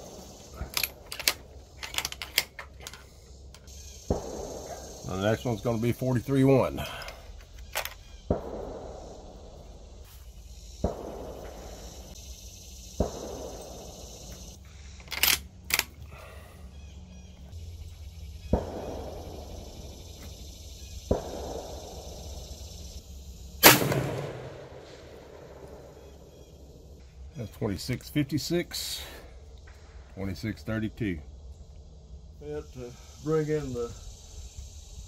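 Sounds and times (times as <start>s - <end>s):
distant gunshots echoing: 4.0s - 5.0s, 8.2s - 9.6s, 10.8s - 12.2s, 13.0s - 14.3s, 18.4s - 20.1s, 21.0s - 22.4s, 23.6s - 26.4s
loud rifle shot with echo: 4.1s - 4.9s, 8.3s - 9.3s, 10.8s - 11.7s, 13.0s - 13.9s, 18.5s - 19.7s, 21.1s - 22.1s, 23.6s - 26.0s.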